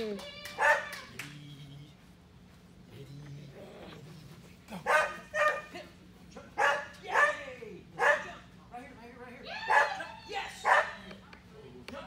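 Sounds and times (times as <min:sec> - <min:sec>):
small dog yip: 0:00.5 - 0:01.0
faint low dog whine: 0:01.1 - 0:02.0, 0:02.9 - 0:04.6.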